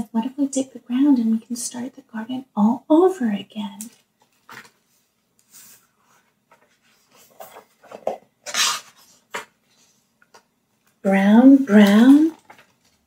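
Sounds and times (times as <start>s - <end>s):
book pages turning: 3.9s - 11.0s, 11.8s - 13.0s.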